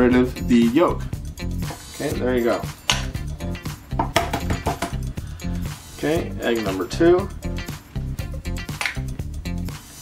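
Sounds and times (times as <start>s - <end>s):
background music with bass line: 0.0s - 10.0s
sharp percussive hits: 2.7s - 5.2s.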